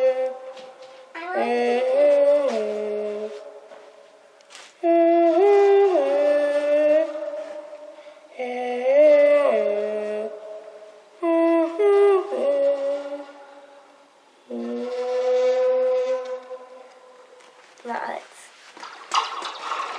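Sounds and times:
girl singing with spring echo: 0.0s - 3.8s, 4.8s - 13.8s, 14.5s - 16.9s.

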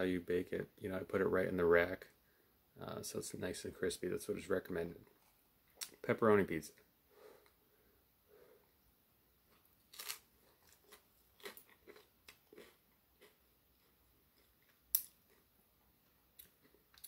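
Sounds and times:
chewing crunchy pizza crust: 9.5s - 15.5s.

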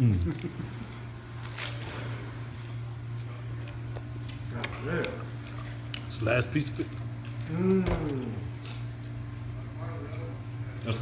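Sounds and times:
man chewing: 0.0s - 7.5s
steady low hum: 0.0s - 11.0s.

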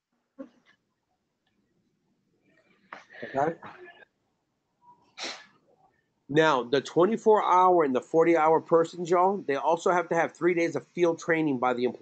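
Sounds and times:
sharp burst of breath: 5.2s - 5.5s.

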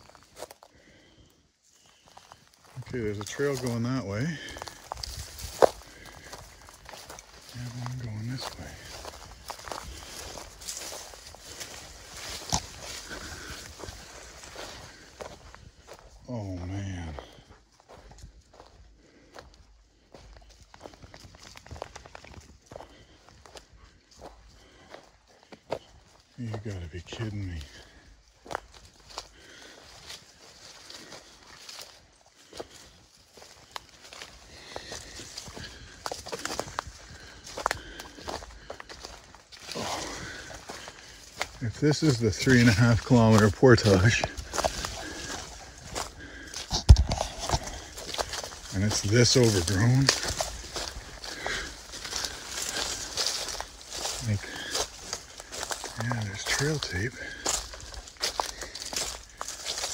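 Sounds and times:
footsteps through weeds and brush: 0.0s - 59.9s.

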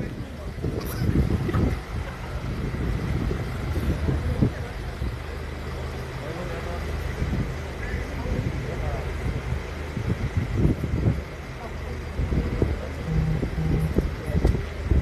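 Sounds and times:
vehicle engine humming: 0.0s - 15.0s
indistinct voices: 11.2s - 15.0s.

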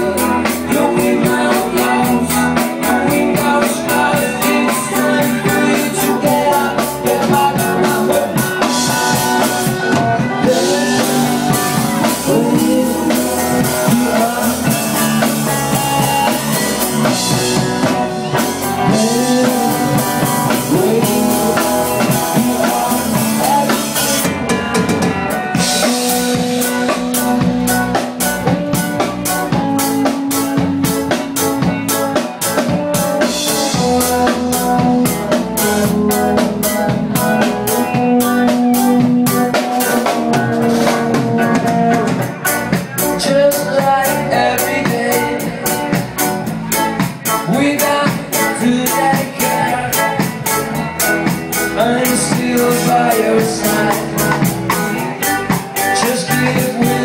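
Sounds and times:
drum kit beat: 0.0s - 57.0s
live rock band playing: 0.0s - 57.0s.

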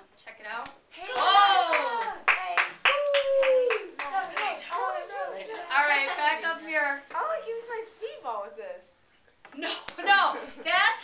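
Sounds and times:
hand claps: 0.6s - 5.7s.

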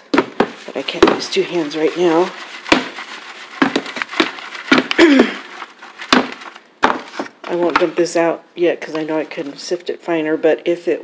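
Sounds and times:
sifter frame knocks: 0.1s - 7.9s.

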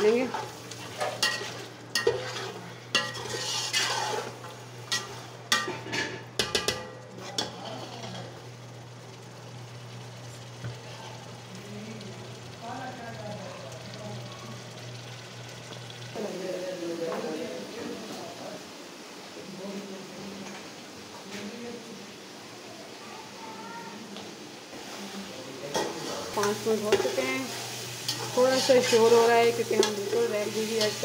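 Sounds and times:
metal spatula scraping pot: 0.0s - 8.4s, 25.7s - 31.0s
meat sizzling in oil: 0.0s - 18.2s, 24.7s - 31.0s.

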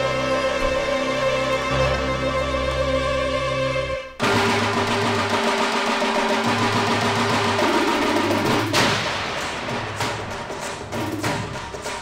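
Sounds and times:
bhangra music with drums: 4.2s - 12.0s.

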